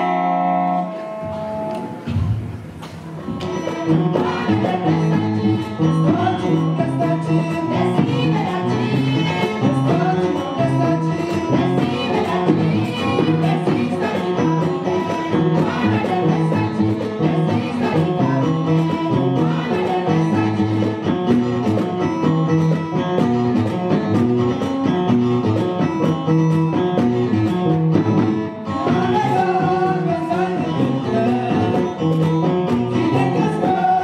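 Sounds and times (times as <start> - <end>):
guitar: 0.0 - 34.0
mixed choir singing: 3.1 - 21.0, 28.7 - 31.8, 33.0 - 34.0.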